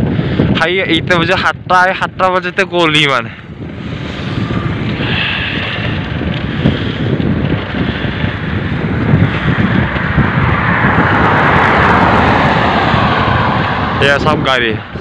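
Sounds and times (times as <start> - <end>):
wind rumbling on microphone: 0.0 - 15.0
pickup truck passing: 9.4 - 15.0.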